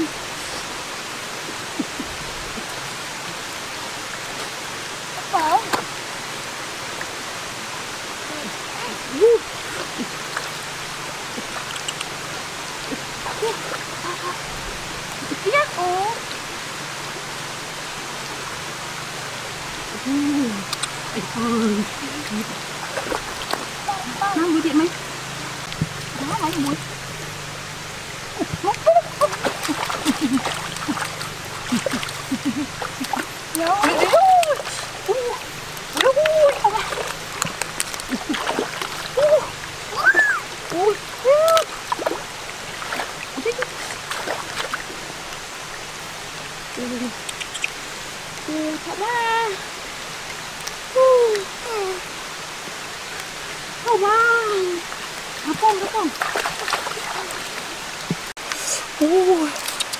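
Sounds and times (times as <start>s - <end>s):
voices: 0.0s - 3.6s, 4.4s - 6.0s, 7.6s - 59.9s
stream flowing over stones: 0.0s - 59.9s.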